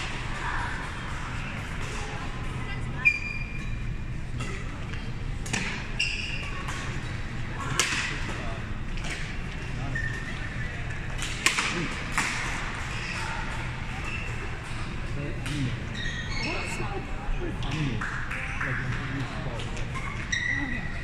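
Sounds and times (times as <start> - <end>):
rackets hitting shuttlecock: 7.6 - 8.4, 11.1 - 12.6
shoes squeaking on court floor: 14.0 - 14.7, 15.5 - 16.9.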